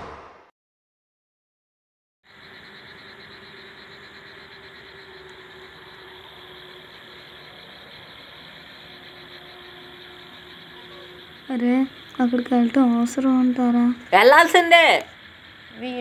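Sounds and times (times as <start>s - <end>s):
faint hum: 2.3s - 16.0s
outdoor hiss: 2.3s - 16.0s.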